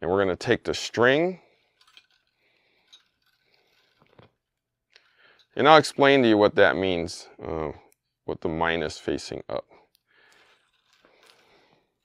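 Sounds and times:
string rustling by hand: 1.4 - 6.3, 9.8 - 12.0.

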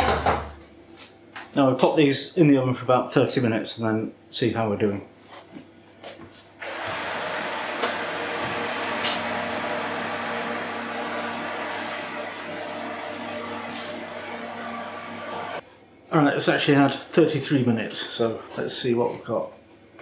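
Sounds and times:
electric oven humming: 6.6 - 18.3.

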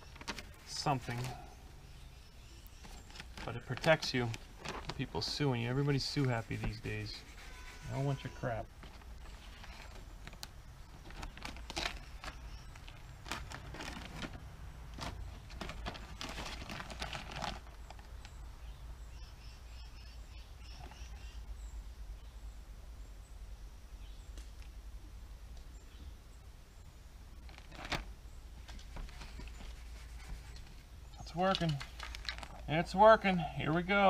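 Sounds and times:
plastic squeegee scraping: 4.6 - 8.7.

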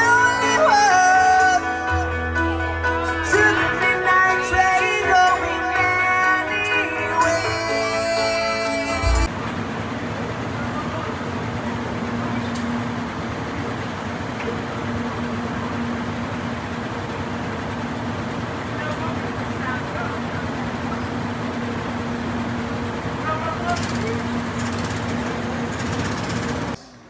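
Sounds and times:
indistinct voices: 3.0 - 9.4
low machine hum: 8.9 - 27.0.

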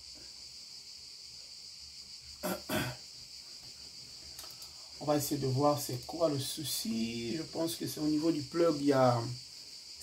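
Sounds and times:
faint electronic hiss: 0.0 - 10.0
man clearing throat: 2.4 - 3.0.

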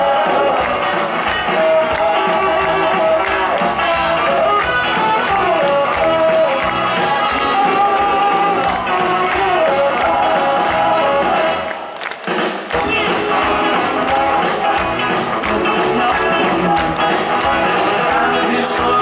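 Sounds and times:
live rock and roll band: 0.0 - 19.0.

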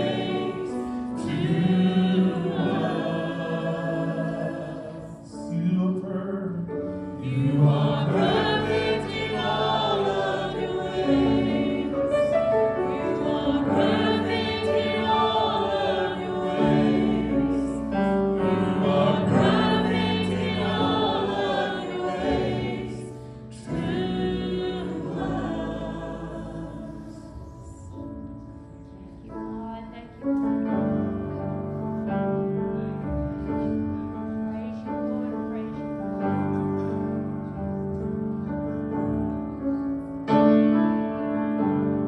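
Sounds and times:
group singing worship music: 0.0 - 29.2.

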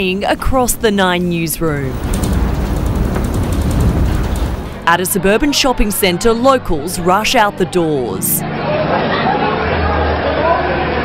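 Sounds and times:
building rumbling in earthquake: 1.8 - 4.9
light fixtures rattling: 1.9 - 4.9.

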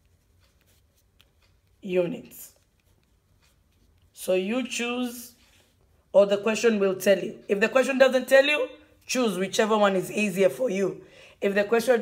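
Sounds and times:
pen scratching on paper: 0.0 - 1.8.

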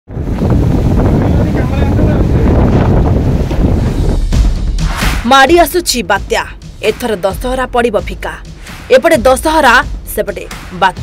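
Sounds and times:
storm wind buffeting microphone: 0.1 - 6.5.

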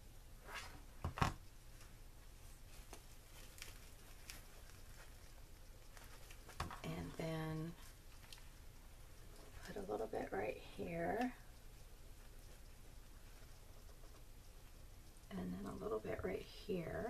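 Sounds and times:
cloth rustling: 0.4 - 7.2.

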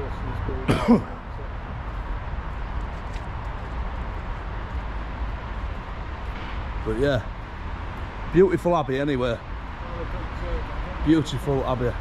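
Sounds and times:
man coughing: 0.6 - 1.2.

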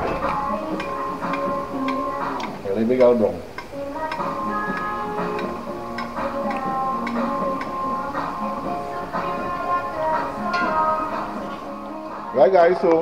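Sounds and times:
held melodic notes: 0.0 - 13.0.

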